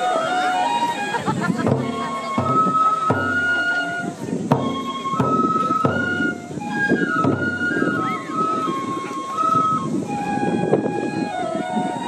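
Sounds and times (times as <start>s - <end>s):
drum strokes: 0.0s - 11.1s
bamboo flute melody: 0.0s - 12.0s.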